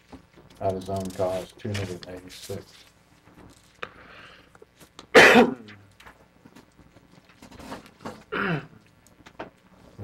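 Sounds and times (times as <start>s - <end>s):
person coughing: 5.2s - 5.7s, 8.3s - 8.7s.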